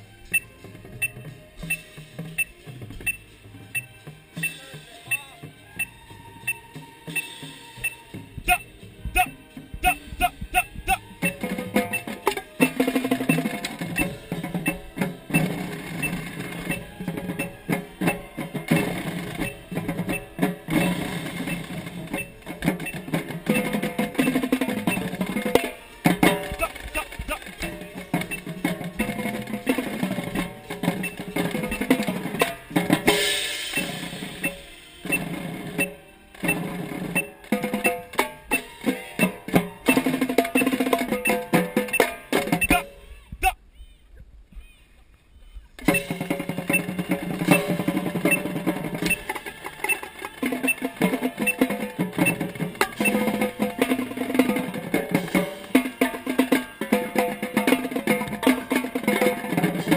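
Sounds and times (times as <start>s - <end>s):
drumline playing: 0.0s - 43.6s, 45.8s - 59.9s
tenor drums playing runs: 0.3s - 43.6s, 45.8s - 59.9s
cymbal crash: 33.1s - 35.1s.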